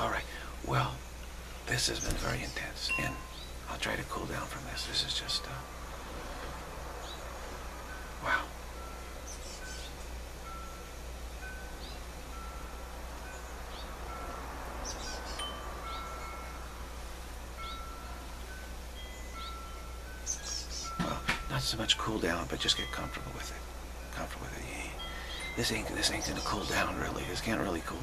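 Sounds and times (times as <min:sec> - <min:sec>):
chime-like ringing notes: 0:02.2 - 0:05.9, 0:06.6 - 0:28.0.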